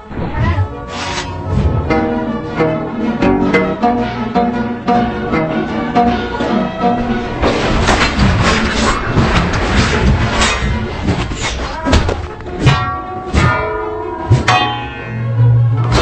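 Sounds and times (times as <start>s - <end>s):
dramatic soundtrack music: 0.0s - 16.0s.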